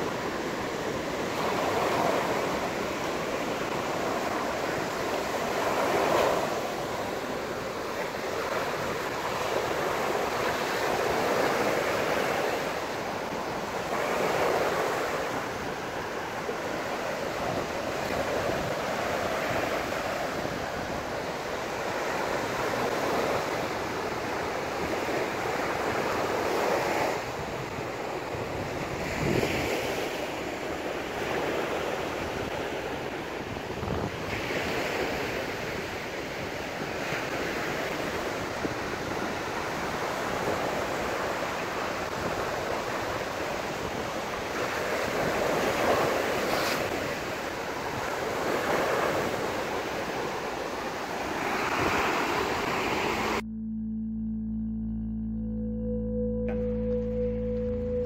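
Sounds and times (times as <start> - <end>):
sea surf breaking on beach: 0.0 - 53.4
music: 53.5 - 58.0.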